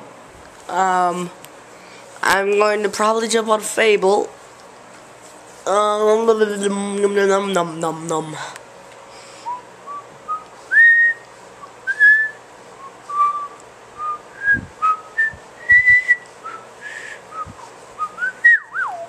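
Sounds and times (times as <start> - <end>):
person whistling: 9.5 - 19.0.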